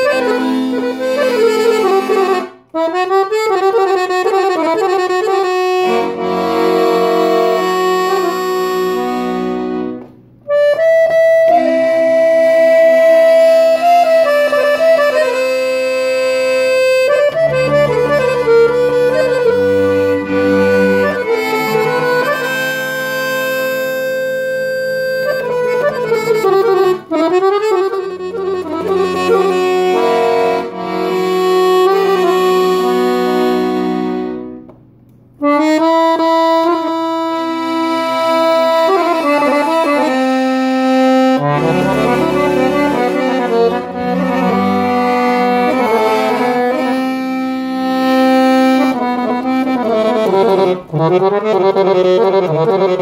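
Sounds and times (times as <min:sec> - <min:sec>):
accordion holding a chord: 0:00.0 - 0:53.0.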